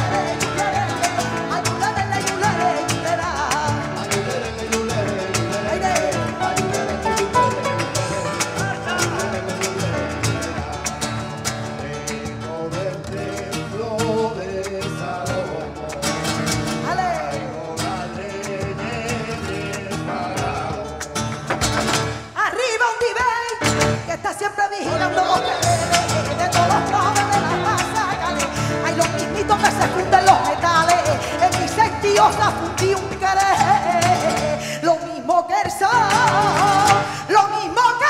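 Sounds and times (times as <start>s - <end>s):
people singing: 0.0s - 21.7s, 22.6s - 38.0s
rhythmic handclaps: 0.0s - 22.3s, 24.9s - 34.7s, 35.6s - 38.0s
guitar: 0.0s - 38.0s.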